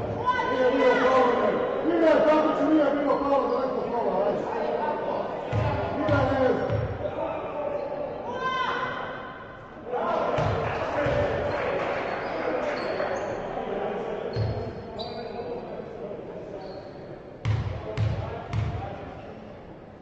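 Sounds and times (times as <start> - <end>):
voices in a hall: 0.0 - 20.0
basketball bouncing on wooden court: 10.4 - 11.3.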